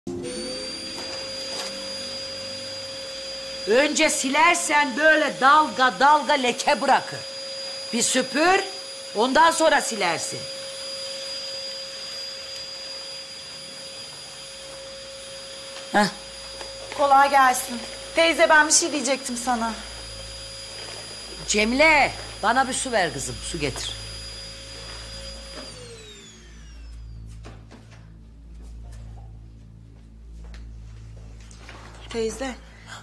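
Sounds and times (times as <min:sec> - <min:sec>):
vacuum cleaner running: 0:00.1 - 0:33.0.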